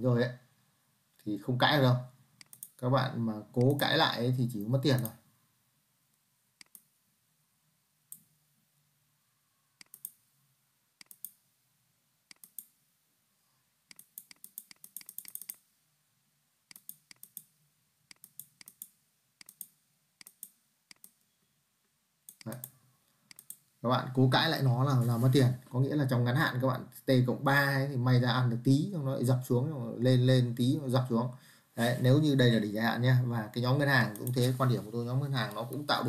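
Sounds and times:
computer mouse clicking: 2.4 - 2.8, 4.9 - 5.2, 6.6 - 6.9, 9.8 - 10.2, 11.0 - 11.4, 12.3 - 12.8, 13.9 - 15.6, 16.7 - 17.5, 18.1 - 21.3, 22.3 - 23.7, 34.1 - 34.4.

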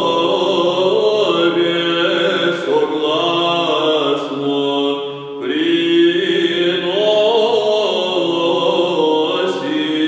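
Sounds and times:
men singing chant: 0.0 - 10.0.

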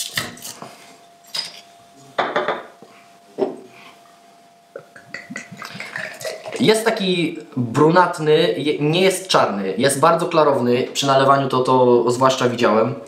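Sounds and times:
glass and metal clinks: 1.2 - 2.6.

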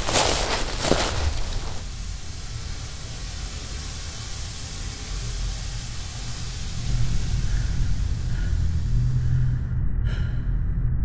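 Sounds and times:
steady hissing noise: 0.0 - 9.8
low rumble: 6.7 - 11.0.

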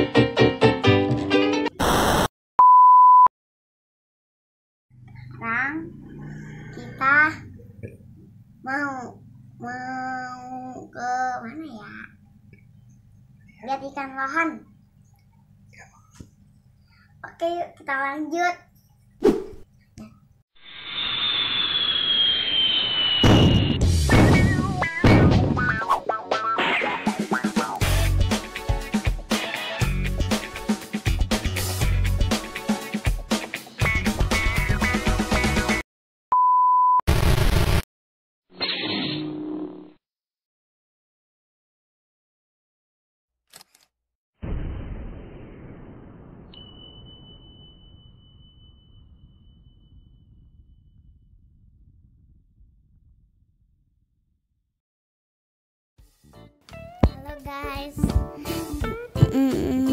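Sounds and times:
whoosh with falling high tone: 20.6 - 24.6
heavy boom: 23.2 - 25.6, 44.4 - 48.2
low rumble: 44.7 - 54.3
high steady ping tone: 46.6 - 50.2.

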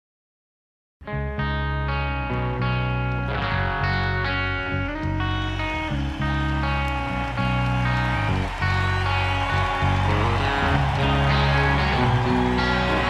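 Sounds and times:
rock music with electric guitar: 1.1 - 13.0.

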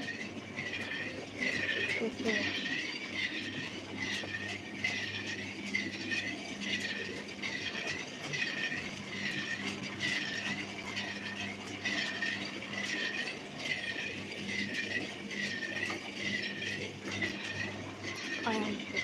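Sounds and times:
low electrical hum: 0.0 - 19.0
rhythmic mechanical squeak: 0.0 - 19.0.

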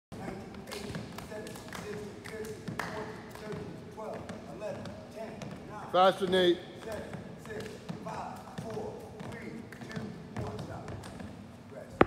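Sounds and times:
basketballs bouncing on wooden floor: 7.9 - 11.3.

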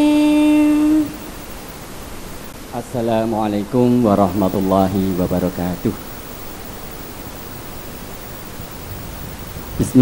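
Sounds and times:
girl singing a long note: 0.0 - 1.3
background hiss: 0.0 - 10.0
man speaking into a microphone: 2.7 - 6.0.

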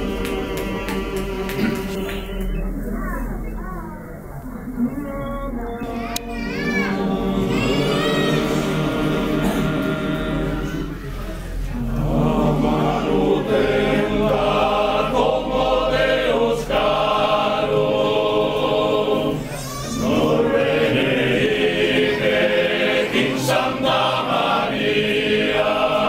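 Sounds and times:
men's choir singing unaccompanied: 0.0 - 3.5, 5.2 - 26.0.

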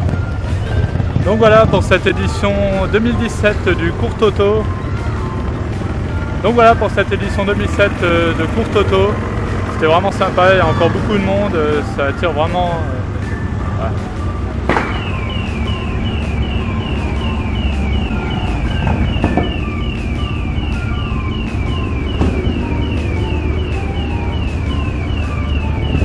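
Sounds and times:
electronic siren chirps: 0.0 - 26.0.

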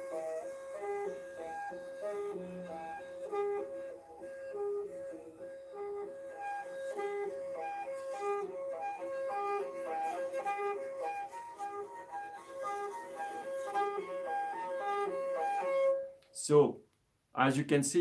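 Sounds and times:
bowed fiddle harmonics: 0.0 - 16.4.

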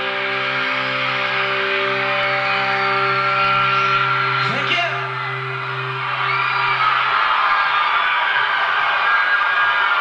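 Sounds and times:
electric guitar chord ringing: 0.0 - 6.0
large crowd screaming: 0.0 - 10.0.

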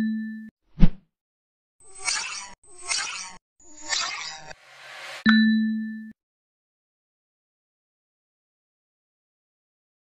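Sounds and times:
short whoosh: 4.5 - 5.3.

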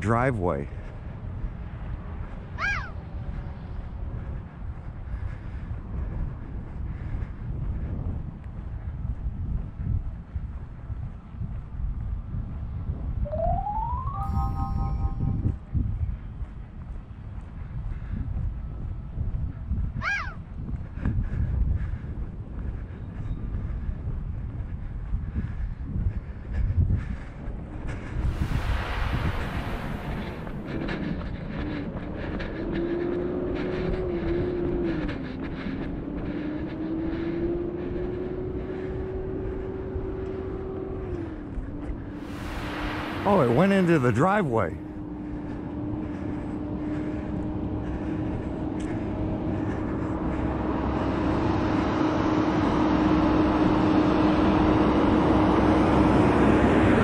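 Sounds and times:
wind rumbling on microphone: 0.0 - 57.0
short whistle-like tones: 13.3 - 15.5
steady wavering hum: 13.3 - 15.7.

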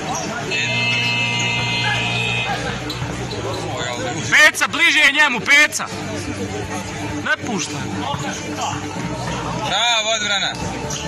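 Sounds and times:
crowd noise: 0.0 - 11.0
scoreboard buzzer: 0.5 - 2.9.

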